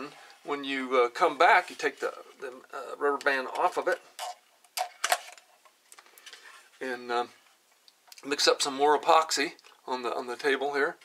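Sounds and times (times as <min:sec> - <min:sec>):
plastic handling: 0:01.6 - 0:06.8.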